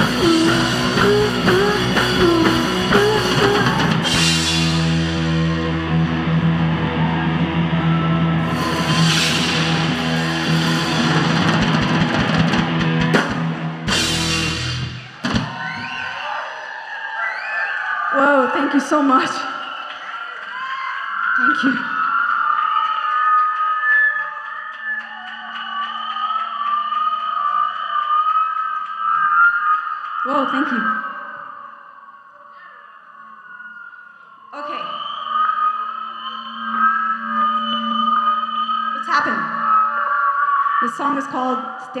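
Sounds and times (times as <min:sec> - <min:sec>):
electric guitar drone: 0:00.0 - 0:15.1.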